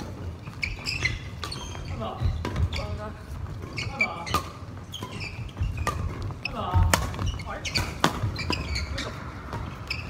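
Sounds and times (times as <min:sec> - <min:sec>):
shoes squeaking on wooden floor: 0:00.0 - 0:10.0
rackets hitting shuttlecock: 0:03.6 - 0:10.0.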